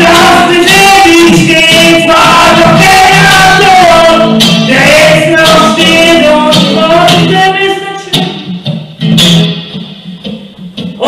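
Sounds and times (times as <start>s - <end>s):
person singing: 0.0s - 8.5s
electric guitar playing: 0.0s - 11.0s.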